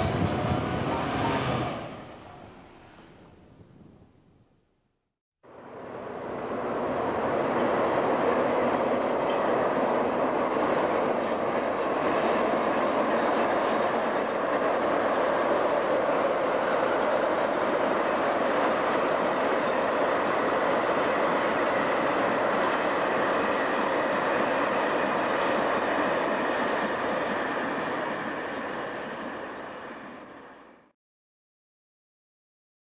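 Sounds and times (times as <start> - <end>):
moving train running: 0.0 - 3.0, 5.5 - 30.9.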